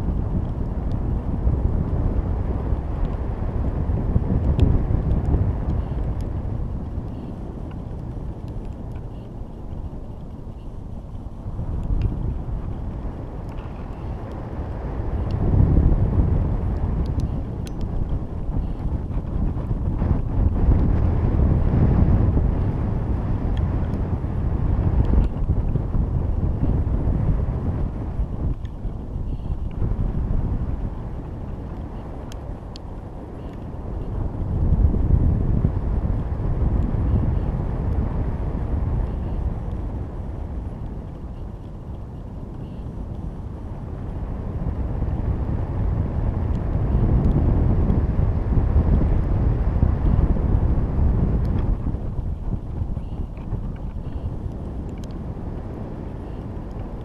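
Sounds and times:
wind noise on microphone: 0:00.0 - 0:57.0.

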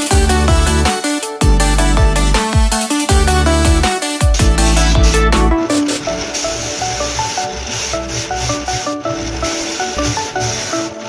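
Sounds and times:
background music with pulsing bass: 0:00.0 - 0:11.0
sanding disc grinding wood: 0:03.2 - 0:11.0.

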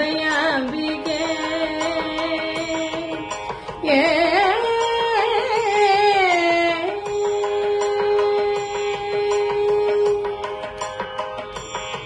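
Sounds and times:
woman singing: 0:00.0 - 0:10.8.

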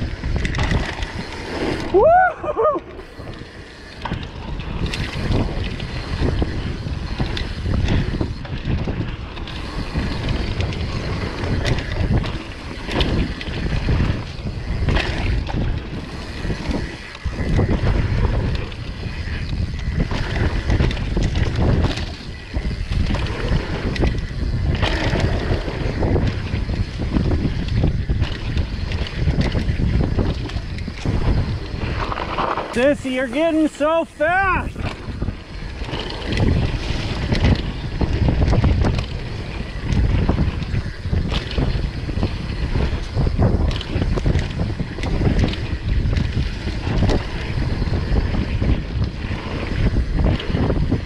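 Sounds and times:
bike knocks and rattles: 0:00.0 - 0:02.0, 0:03.4 - 0:32.8
tyres rolling on dirt: 0:00.0 - 0:51.0
wind rushing over microphone: 0:00.0 - 0:51.0.

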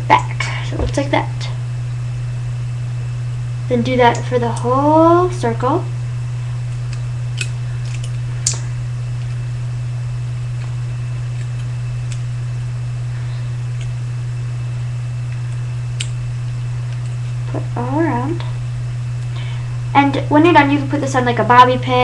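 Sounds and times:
low hum: 0:00.0 - 0:22.0.

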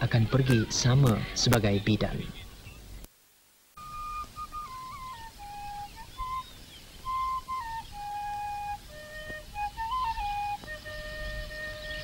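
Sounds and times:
solo flute melody: 0:03.8 - 0:12.0.

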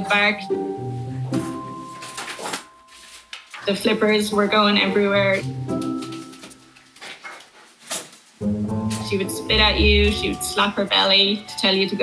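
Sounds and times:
plucked guitar music: 0:08.7 - 0:11.2.

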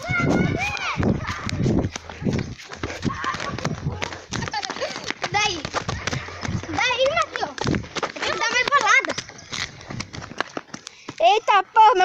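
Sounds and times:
running footsteps: 0:00.0 - 0:12.0.

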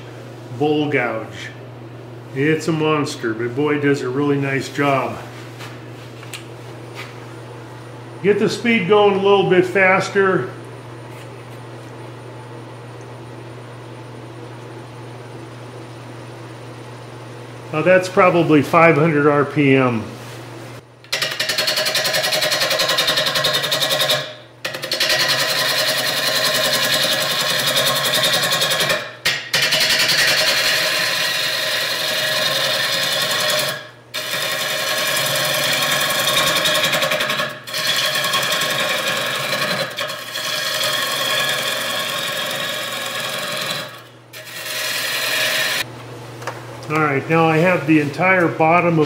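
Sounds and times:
gouge cutting wood on lathe: 0:21.1 - 0:45.8.

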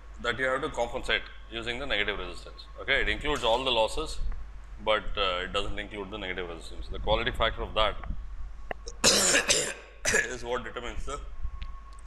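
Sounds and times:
man coughing: 0:09.0 - 0:10.4.

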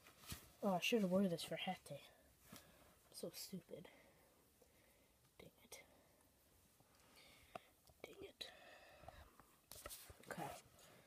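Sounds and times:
faint whispering: 0:05.4 - 0:06.2, 0:07.9 - 0:09.4.

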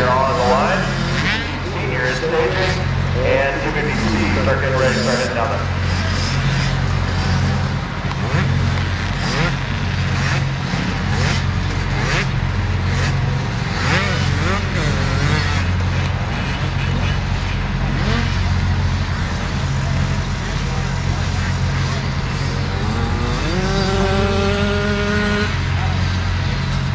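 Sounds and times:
low engine drone: 0:00.0 - 0:26.9
motorbike engines revving: 0:00.0 - 0:26.9.

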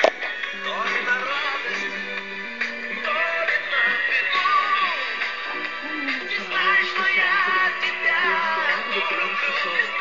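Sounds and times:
instrumental backing track: 0:00.0 - 0:10.0
person singing: 0:00.0 - 0:10.0.

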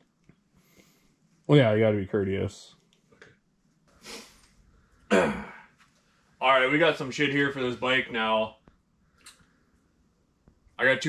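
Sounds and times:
man breathing softly: 0:00.5 - 0:01.4.

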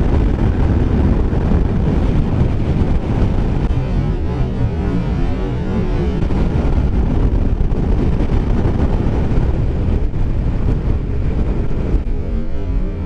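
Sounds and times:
motorcycle engine running: 0:00.0 - 0:13.0
wind rushing over microphone: 0:00.0 - 0:13.0.

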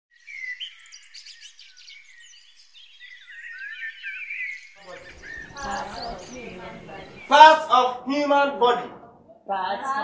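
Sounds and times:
birds chirping and twittering: 0:00.1 - 0:08.0.

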